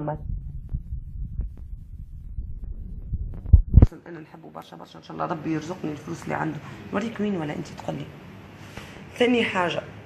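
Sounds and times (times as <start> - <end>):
heavy thumps on microphone: 0.0 - 3.9.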